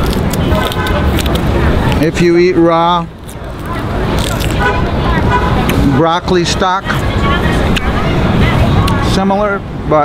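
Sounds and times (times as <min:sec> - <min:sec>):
faint background voices: 0:00.0 - 0:09.9
city traffic rumble: 0:00.0 - 0:10.0.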